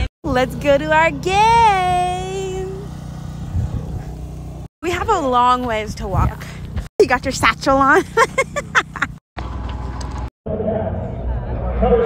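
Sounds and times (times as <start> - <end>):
low steady engine hum: 0.0 - 10.3.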